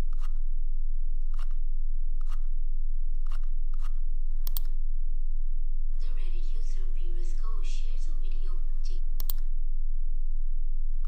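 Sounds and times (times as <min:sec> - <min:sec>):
steady low hum: 0:00.0 - 0:11.0
mouse scroll wheel clicking: 0:00.1 - 0:00.4, 0:01.3 - 0:01.6, 0:02.2 - 0:02.5, 0:03.2 - 0:04.7.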